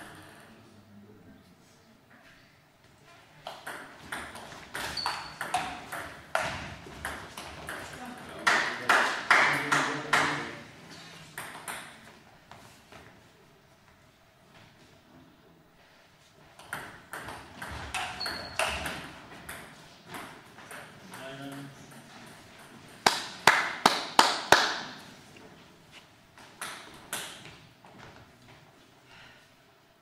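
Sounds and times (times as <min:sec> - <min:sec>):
loud sharp claps or knocks: 0:08.4 - 0:10.6, 0:23.0 - 0:25.0.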